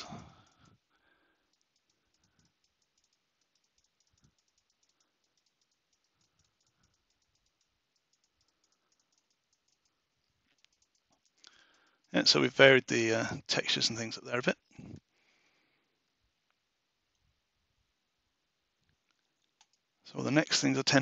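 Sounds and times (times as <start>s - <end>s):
keyboard and mouse clicking: 1.4s - 12.2s, 19.1s - 20.5s.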